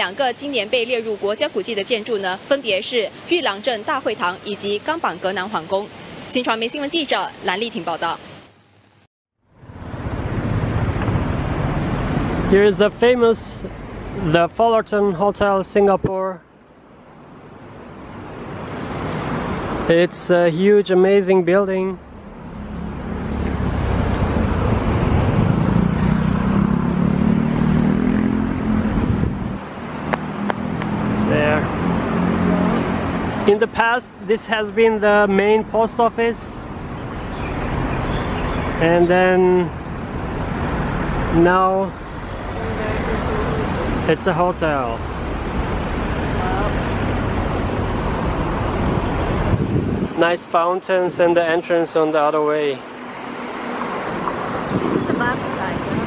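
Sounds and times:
road traffic noise: 0:00.0 - 0:56.0
vehicle passing close by: 0:22.0 - 0:33.5.

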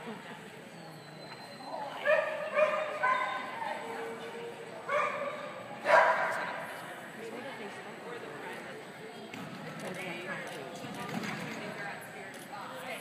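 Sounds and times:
dog barking high-pitched: 0:02.0 - 0:03.5, 0:04.9 - 0:06.4.

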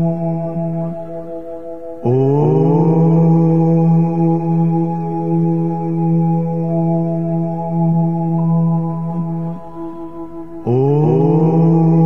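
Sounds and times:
meditative drone: 0:00.0 - 0:12.0
person chanting om: 0:00.0 - 0:12.0.

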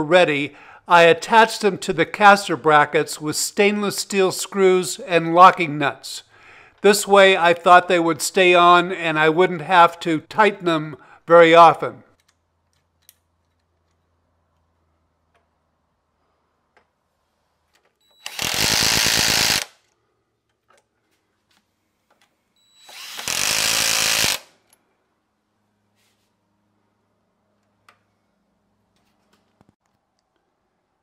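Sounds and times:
electric driver driving screws: 0:18.1 - 0:19.8, 0:22.8 - 0:24.7.

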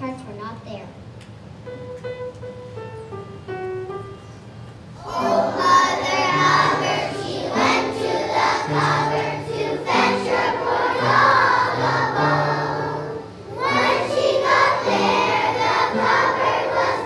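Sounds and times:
children singing together: 0:05.0 - 0:17.0.

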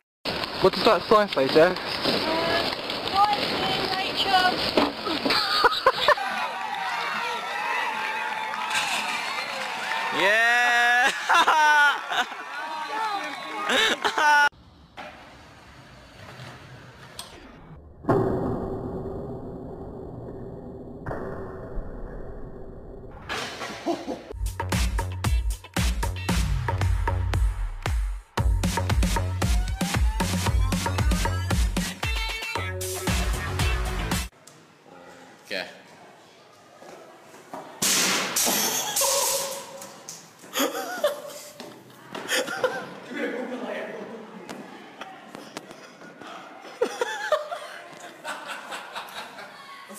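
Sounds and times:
skateboard wheels rolling on concrete: 0:00.3 - 0:10.1, 0:13.0 - 0:17.2
crash into metal pole: 0:37.8 - 0:39.8.

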